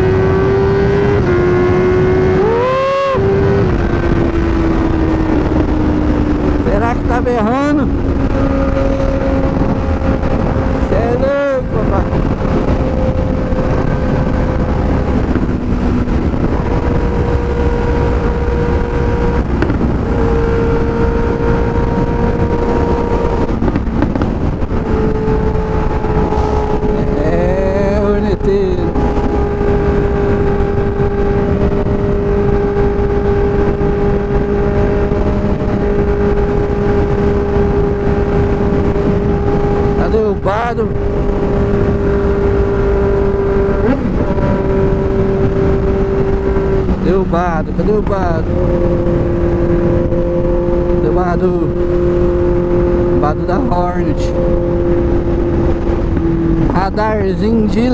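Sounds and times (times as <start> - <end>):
motorcycle engine cruising: 0.0 - 57.9
wind rush: 0.0 - 57.9.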